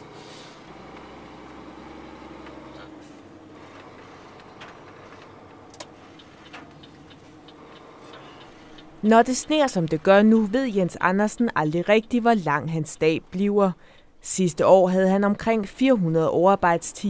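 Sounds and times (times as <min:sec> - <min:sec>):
truck engine and road hum: 0:00.0 - 0:16.8
faint clicks and rattles: 0:03.6 - 0:10.6.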